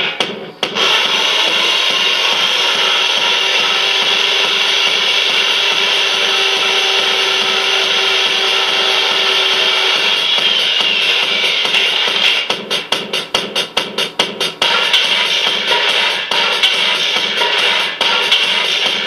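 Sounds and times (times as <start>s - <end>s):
grinding noise drone: 0.6s - 12.6s.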